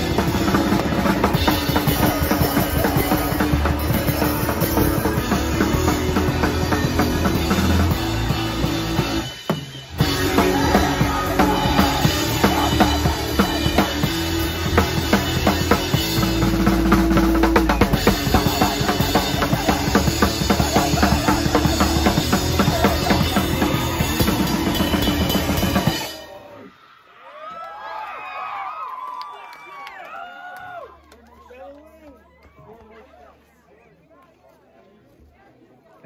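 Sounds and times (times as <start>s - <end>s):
distorted guitar: 0.0s - 26.3s
fast drums and cymbals: 0.0s - 26.4s
punk band playing live: 0.0s - 26.5s
people shouting and cheering: 0.0s - 34.0s.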